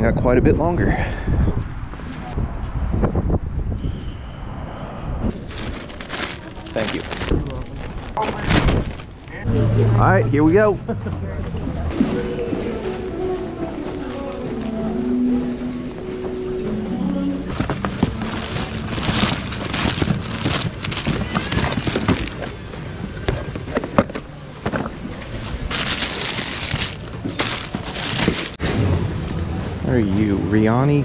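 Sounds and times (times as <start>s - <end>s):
plastic packaging crinkling: 5.5s - 8.2s, 17.5s - 22.6s, 25.7s - 28.6s
background voices: 11.1s - 22.6s
boxes knocking: 17.5s - 22.6s.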